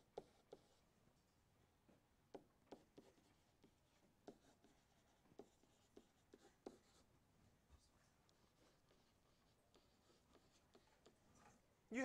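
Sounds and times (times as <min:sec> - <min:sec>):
stylus tapping and scratching on screen: 0:00.0 - 0:00.8, 0:02.3 - 0:07.1, 0:07.7 - 0:11.7.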